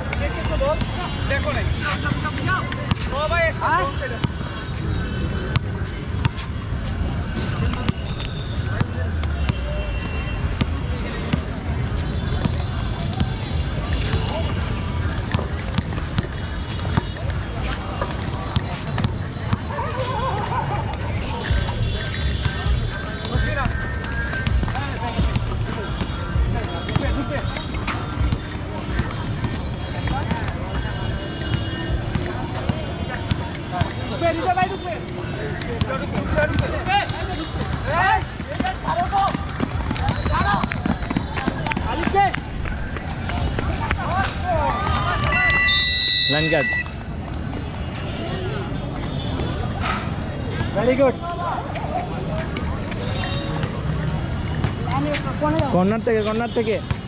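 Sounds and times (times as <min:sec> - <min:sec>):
people shouting: 0:43.4 - 0:46.9.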